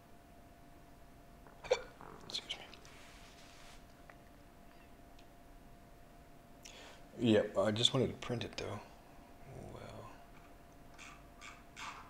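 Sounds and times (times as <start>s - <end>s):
faint steady hum: 0.0s - 12.0s
man hiccup-like vocal sound: 1.5s - 2.0s
soft breathy hiss: 2.0s - 5.0s, 6.6s - 7.3s.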